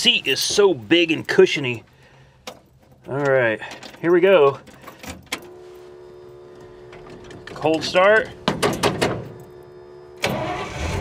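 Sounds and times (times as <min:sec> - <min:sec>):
steady electric hum: 0:00.0 - 0:10.2.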